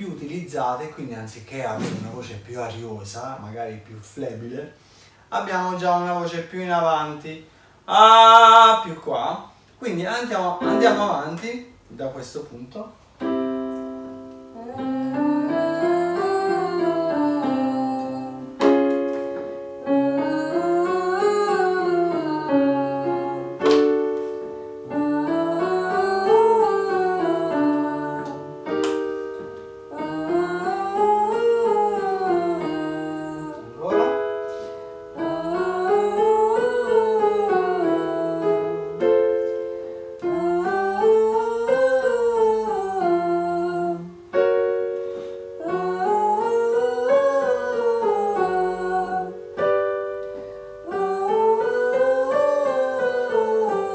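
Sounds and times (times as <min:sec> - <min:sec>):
man and woman singing scales: 0:07.9 - 0:09.1, 0:10.6 - 0:11.6, 0:14.5 - 0:18.9, 0:19.8 - 0:53.9
electric keyboard chords: 0:10.6 - 0:11.4, 0:13.2 - 0:53.9.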